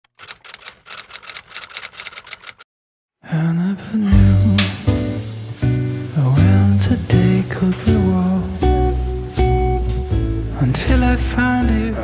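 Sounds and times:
keyboard typing clicks: 0.1s - 2.6s.

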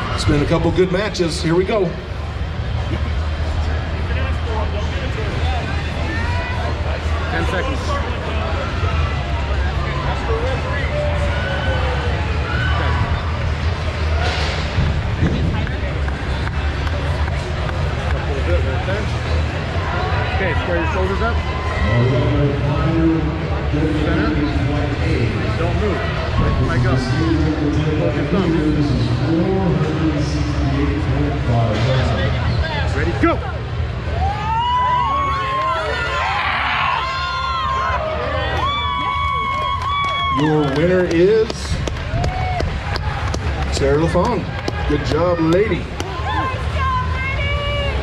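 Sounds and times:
crowd chatter: 0.0s - 48.0s
spectators yelling: 5.3s - 14.6s, 33.2s - 41.4s, 42.0s - 48.0s.

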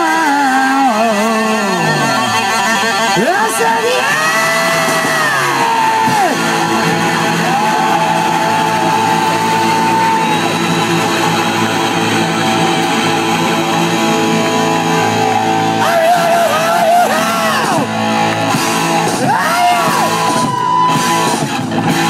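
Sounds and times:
heavy metal band playing: 0.0s - 22.0s.

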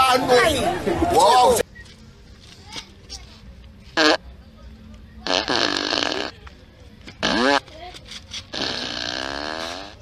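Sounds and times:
pitched wavering fart noise: 4.0s - 4.2s, 5.2s - 6.4s, 7.2s - 7.6s, 8.5s - 10.0s.

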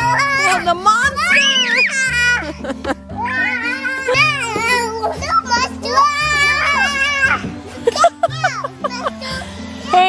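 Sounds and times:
music with low bass notes: 0.0s - 10.0s
toddlers squealing: 0.0s - 10.0s.

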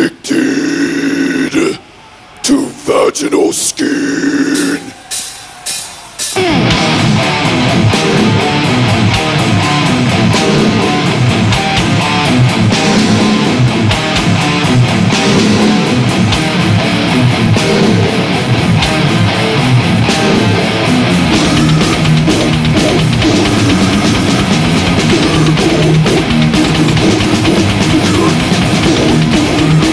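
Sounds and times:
death metal band playing live: 4.5s - 29.9s.

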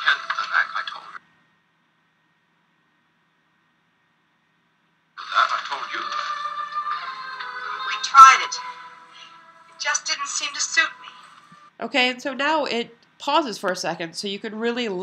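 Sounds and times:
film soundtrack music: 5.2s - 11.7s.

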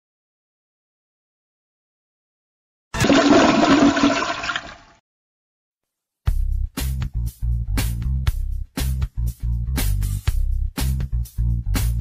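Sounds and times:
toilet flushing: 3.0s - 5.0s.

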